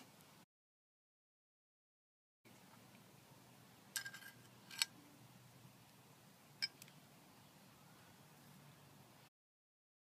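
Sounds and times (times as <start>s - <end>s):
faint background hum: 2.5s - 9.3s.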